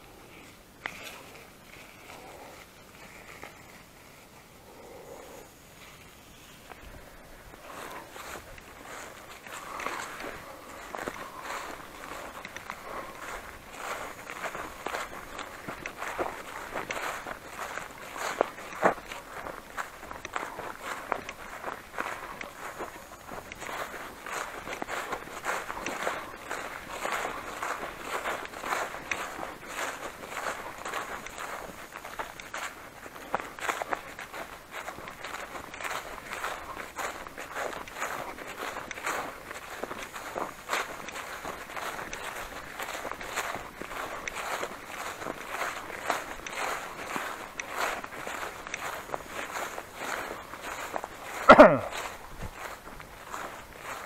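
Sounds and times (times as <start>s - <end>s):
footsteps through grass: 0.0s - 54.0s
rustle of vegetation and clothing: 0.0s - 54.0s.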